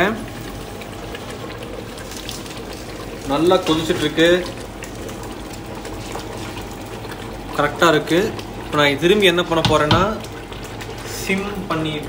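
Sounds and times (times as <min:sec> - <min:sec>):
water boiling in a pot: 0:00.0 - 0:12.0.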